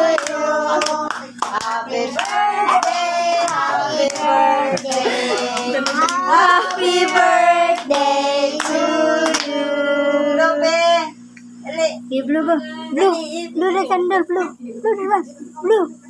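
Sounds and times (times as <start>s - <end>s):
people clapping in rhythm: 0.0s - 9.6s
people singing together: 0.0s - 11.1s.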